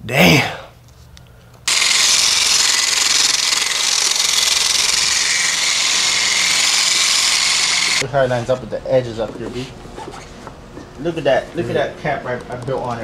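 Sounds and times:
electric polisher whirring: 1.7 - 8.0
motor whine: 1.7 - 8.0.

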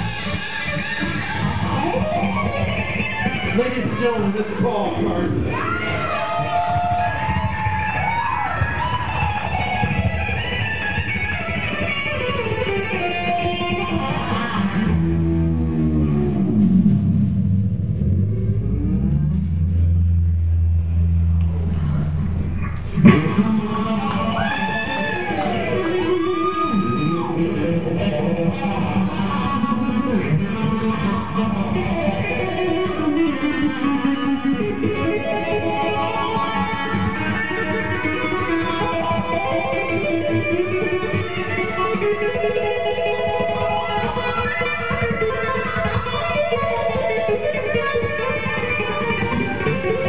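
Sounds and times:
electric guitar rock solo: 0.0 - 50.0
sharp hit: 17.2 - 24.2.

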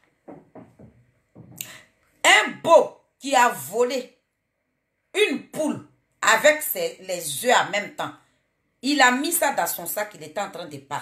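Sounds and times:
woman speaking: 1.6 - 4.2, 5.1 - 8.2, 8.8 - 11.0.

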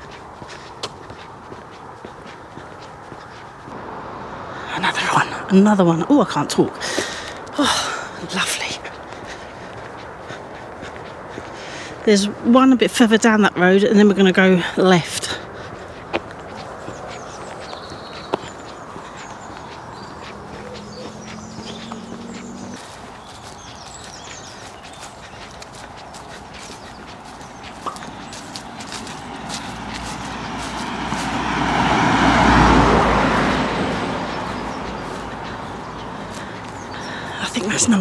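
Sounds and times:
footsteps on pavement: 0.0 - 3.9, 4.8 - 38.0
vehicle passing: 0.0 - 38.0.

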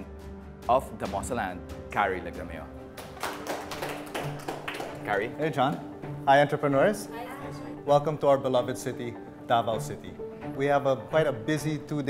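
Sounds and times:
quiet background music: 0.0 - 12.0
people clapping: 2.9 - 6.0.

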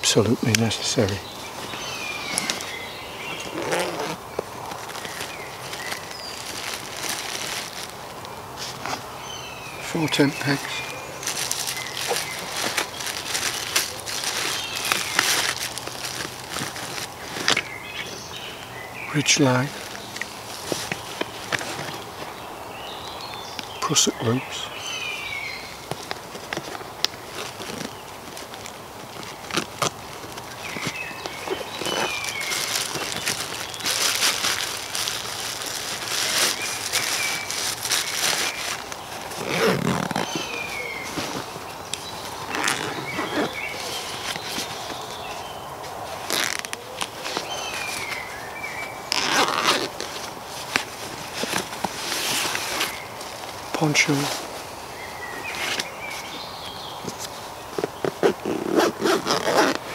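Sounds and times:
fabric rustling: 0.8 - 18.7, 19.4 - 23.6, 25.6 - 59.9
zipper runs: 1.6 - 8.0, 10.6 - 17.6, 29.2 - 41.6, 42.3 - 45.2, 49.1 - 53.0, 57.2 - 59.9.

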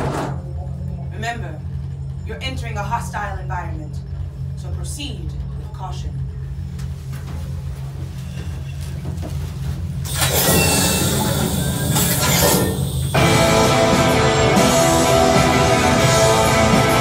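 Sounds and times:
low rumbling drone: 0.0 - 17.0
airlock door hiss: 10.0 - 13.4
rock music: 12.4 - 17.0.

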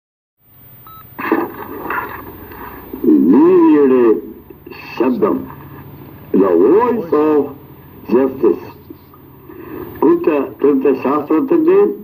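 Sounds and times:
short electronic beep: 0.8 - 1.1.

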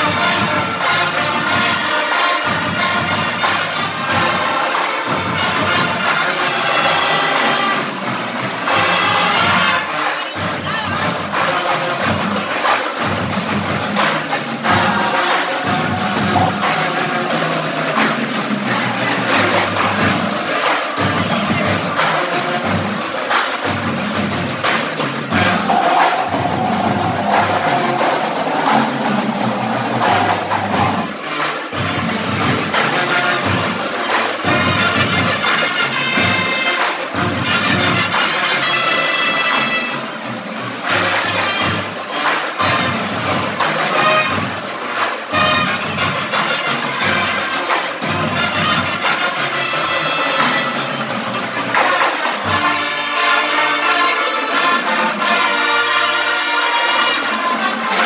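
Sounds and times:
brass chords: 0.0 - 58.0
drum and percussion hits: 0.0 - 58.0.

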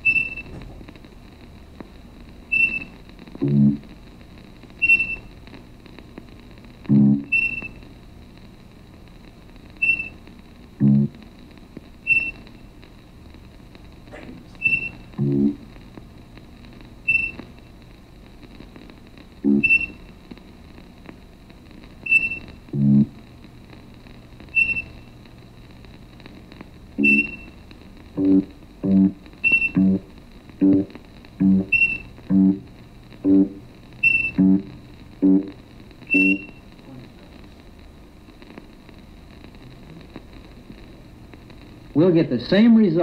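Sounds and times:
low plucked electronic tones: 3.4 - 3.8, 6.9 - 7.6, 10.8 - 11.2, 14.7 - 15.6, 19.4 - 19.9, 22.2 - 23.1, 27.0 - 27.4, 28.2 - 36.5
high electronic ping: 17.1 - 17.4, 19.5 - 20.0, 27.0 - 27.5, 31.5 - 32.5, 33.3 - 34.5, 36.1 - 36.6.

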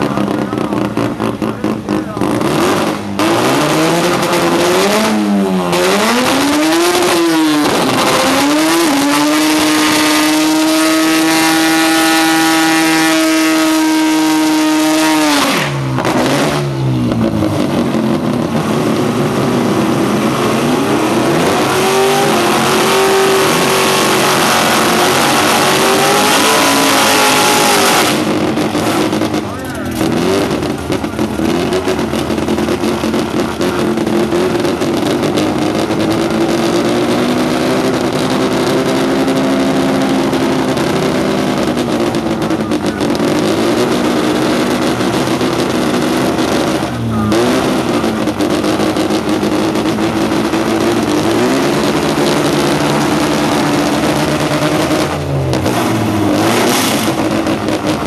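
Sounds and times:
truck engine revving: 0.0 - 58.0.

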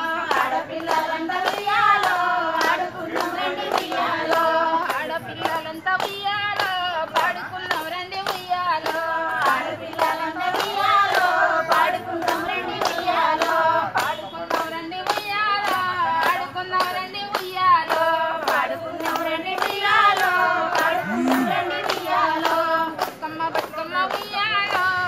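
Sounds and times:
rhythmic hand claps: 0.0 - 25.0
women singing folk song: 0.0 - 25.0.

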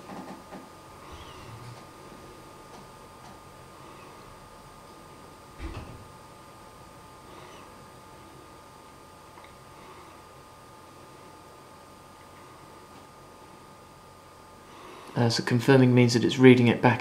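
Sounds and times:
faint steady high whine: 0.0 - 17.0.

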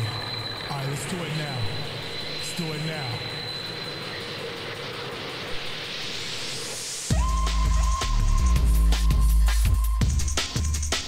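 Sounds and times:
faint high whine: 0.0 - 10.6.

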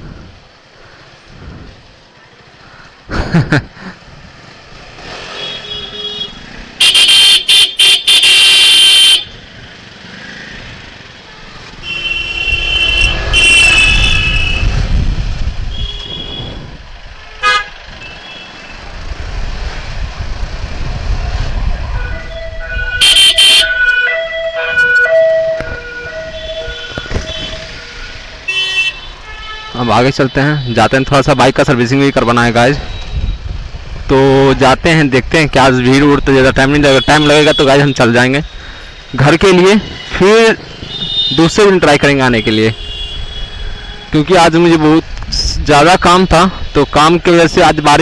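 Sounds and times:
motorcycle rumbling: 0.0 - 30.0, 30.6 - 48.0
vehicle horns honking: 5.0 - 9.3, 11.7 - 14.8, 15.7 - 18.8, 21.9 - 30.9, 36.9 - 38.1, 39.7 - 44.2.

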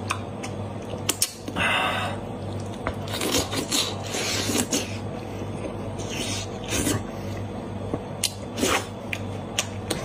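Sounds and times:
chewing and wet mouth sounds: 2.3 - 5.0, 8.2 - 10.0.

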